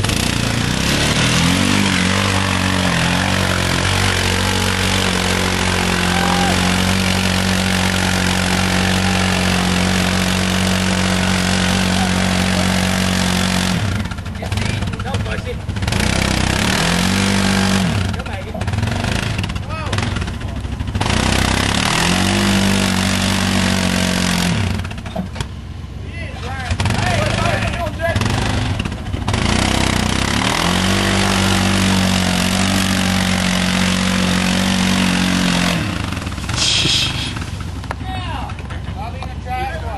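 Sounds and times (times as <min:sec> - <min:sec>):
off-road vehicle engine revving: 0:00.0 - 0:39.9.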